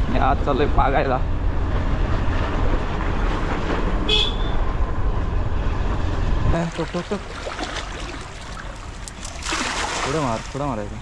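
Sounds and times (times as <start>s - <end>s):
short horn beep: 4.1s - 4.6s.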